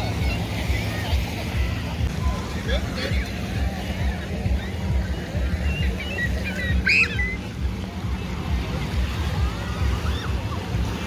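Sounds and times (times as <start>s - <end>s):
distant high voices: 0.0s - 11.0s
wind and lake water rumble: 0.0s - 11.0s.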